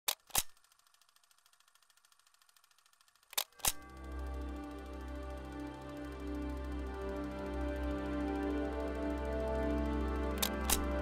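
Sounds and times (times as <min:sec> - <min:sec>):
soft music: 0:03.6 - 0:11.0
sharp clicks: 0:10.4 - 0:11.0.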